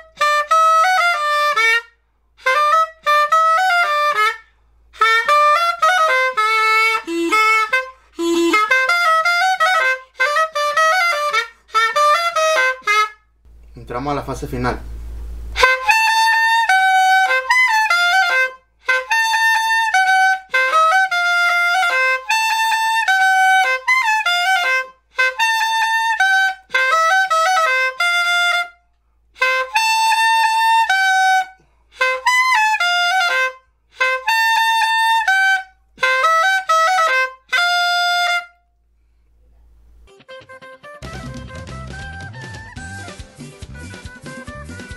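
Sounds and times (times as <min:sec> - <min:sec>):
reedy flute melody: 0:00.0 - 0:13.4, 0:15.6 - 0:28.8, 0:29.4 - 0:38.6, 0:40.1 - 0:44.9
recorded music with drums: 0:41.0 - 0:44.9.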